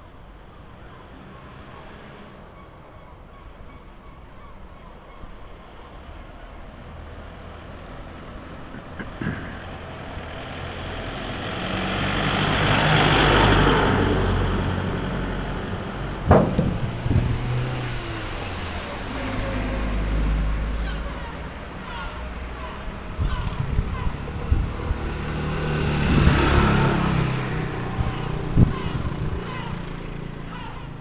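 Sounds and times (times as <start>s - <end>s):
vehicle passing by: 0.9s - 2.5s, 5.9s - 31.0s
sharp knock: 16.3s - 17.4s.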